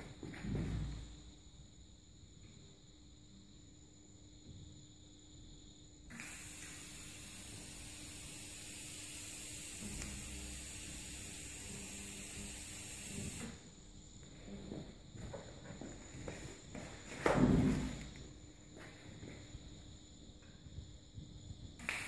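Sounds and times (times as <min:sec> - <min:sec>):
welding torch hissing: 0:06.1 - 0:13.6, 0:21.8 - 0:22.0.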